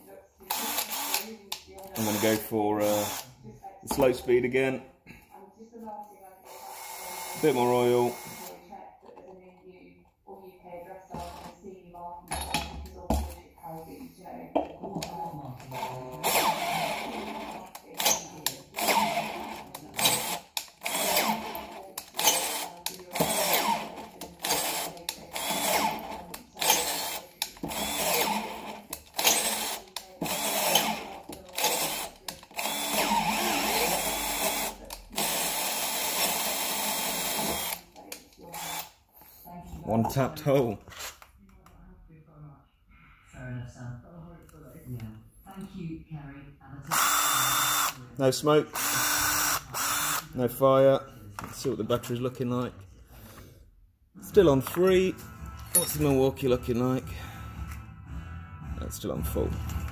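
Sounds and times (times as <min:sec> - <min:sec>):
drill tapping thread into steel: 0:26.6 - 0:28.4, 0:31.6 - 0:37.8.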